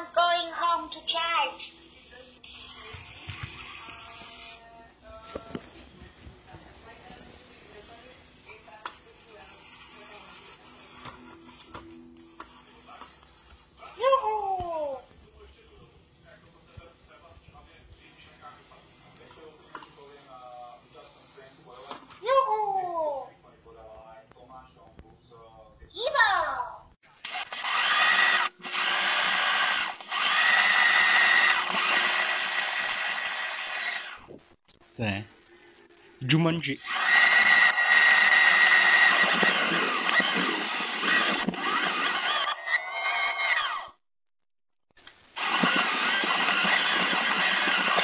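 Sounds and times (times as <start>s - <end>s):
small wheel motors whirring: 2.2s - 4.7s, 6.8s - 13.6s, 27.3s - 34.2s, 36.8s - 43.9s, 45.4s - 48.0s.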